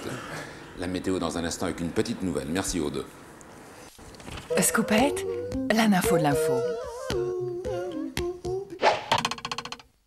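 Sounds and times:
person humming a jingle: 4.6 - 8.8.

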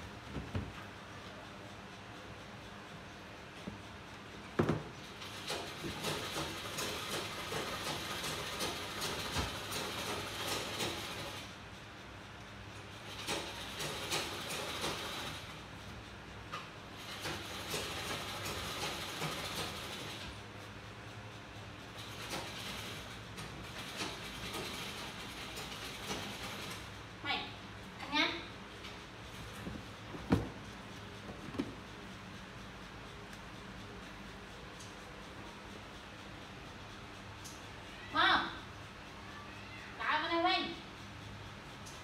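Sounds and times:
sewing machine clattering: 5.0 - 11.5, 12.9 - 15.6, 17.0 - 20.3, 22.0 - 26.9.

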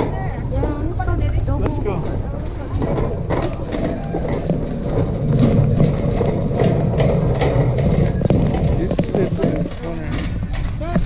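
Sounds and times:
shopping cart rolling: 0.0 - 11.0.

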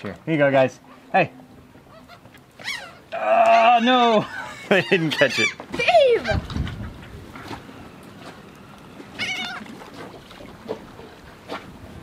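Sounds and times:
gulls calling: 0.8 - 10.8.

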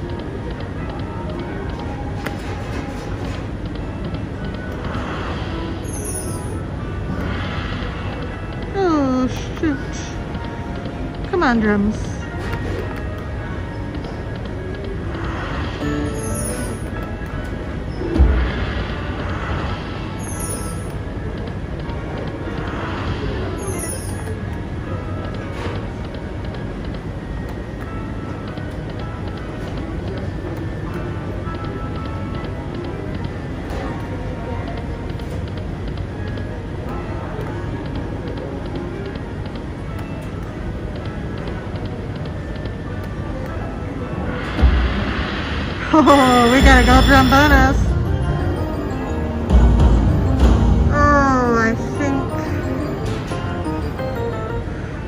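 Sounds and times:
slot machine music and reels: 0.0 - 55.0
casino din: 46.0 - 54.7.

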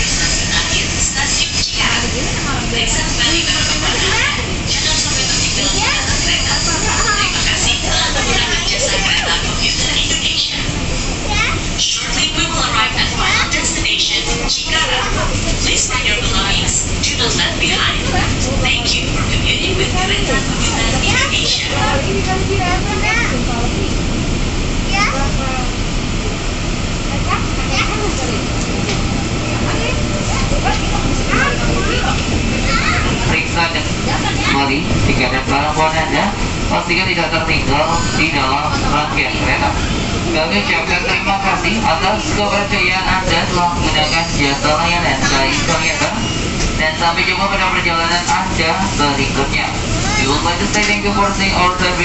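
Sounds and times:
children chattering: 0.0 - 52.0
indistinct voices talking: 0.0 - 52.0
train running rumble: 0.0 - 52.0.

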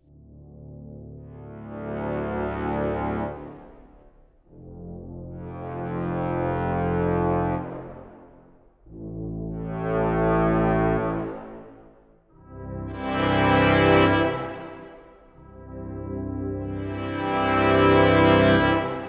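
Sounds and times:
brass ensemble sustained chords: 0.1 - 19.0.

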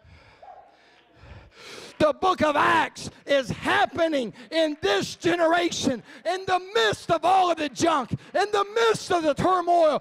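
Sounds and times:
man breathing into microphone: 0.0 - 2.0.

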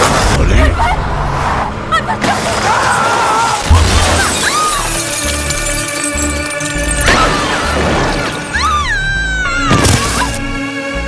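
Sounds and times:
glass shattering: 3.6 - 8.8
dramatic score music: 6.2 - 11.0.

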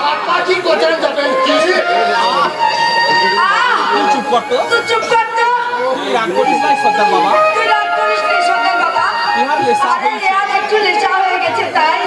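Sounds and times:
actors delivering dialogue: 0.0 - 12.0
voices chattering: 0.0 - 12.0.

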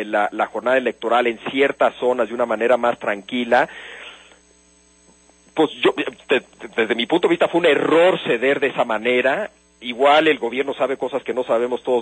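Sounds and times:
electrical hum: 0.0 - 12.0
man speaking over telephone: 5.6 - 12.0.

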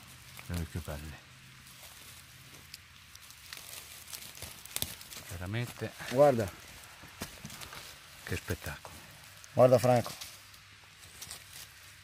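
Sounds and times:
fingers rustling dry leaves: 0.0 - 12.0
small crackles and snaps: 1.8 - 5.7, 8.6 - 11.8.

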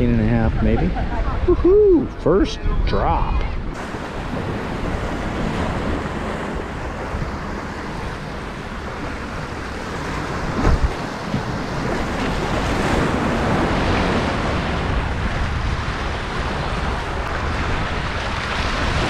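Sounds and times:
wind buffeting microphone: 0.0 - 19.0
surf washing against rocks: 3.8 - 19.0.

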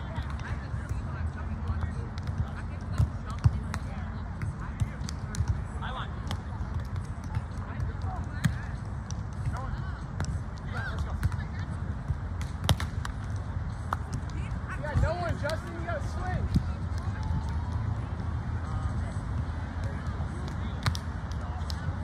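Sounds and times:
distant players' voices: 0.0 - 22.0.

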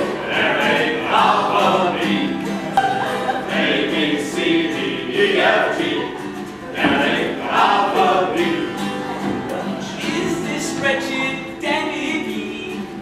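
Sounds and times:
acoustic guitar: 0.0 - 13.0
group singing: 0.0 - 13.0.

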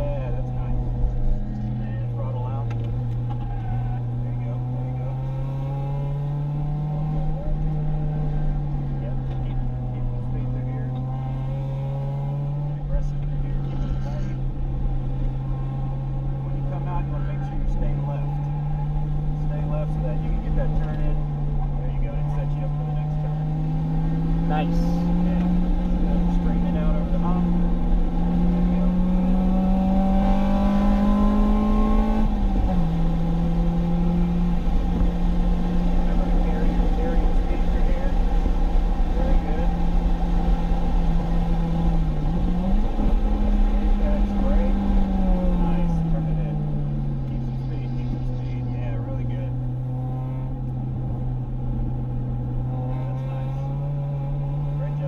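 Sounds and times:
car engine under load: 0.0 - 55.0
road and wind noise: 0.0 - 55.0.

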